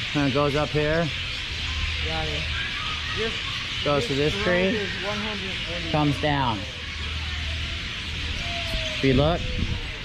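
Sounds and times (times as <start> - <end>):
dense bird chatter: 0.0 - 10.0
steady low hum: 0.0 - 10.0.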